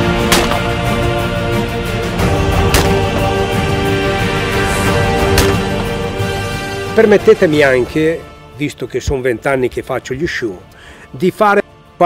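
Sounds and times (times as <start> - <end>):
background music: 0.0 - 12.0
shotgun shots: 0.2 - 0.8, 2.6 - 3.2, 5.2 - 5.8.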